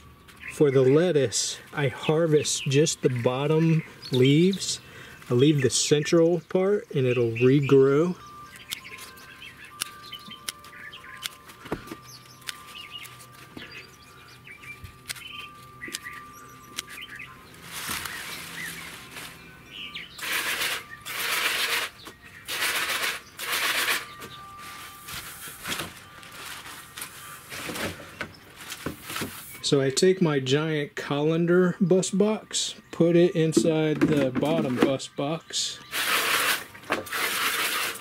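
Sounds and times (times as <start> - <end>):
lettuce leaves rustling: 14.9 - 19.6, 20.2 - 29.6.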